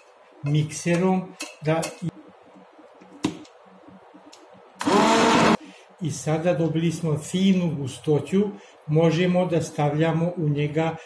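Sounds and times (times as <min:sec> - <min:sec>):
immersion blender running: 0:04.8 - 0:05.6.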